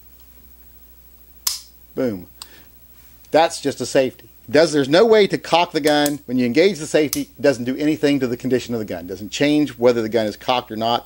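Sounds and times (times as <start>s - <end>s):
pistol hammer click: 1.4s - 1.7s.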